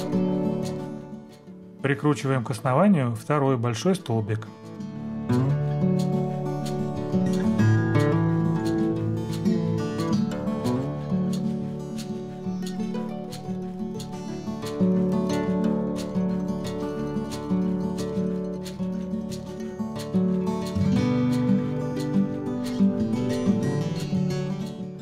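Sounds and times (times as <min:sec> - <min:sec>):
acoustic guitar instrumental music: 0:00.0 - 0:25.0.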